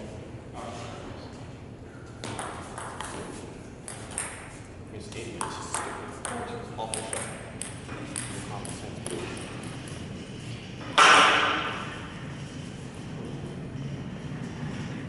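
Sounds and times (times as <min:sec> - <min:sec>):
voices in a hall: 0:00.0 - 0:14.5
table tennis ball clicking: 0:02.2 - 0:03.2, 0:03.8 - 0:04.4, 0:05.4 - 0:10.0.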